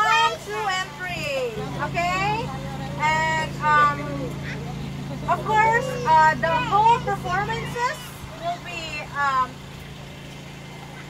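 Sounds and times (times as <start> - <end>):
woman speaking through megaphone: 0.0 - 9.6
steady low hum: 0.0 - 11.0.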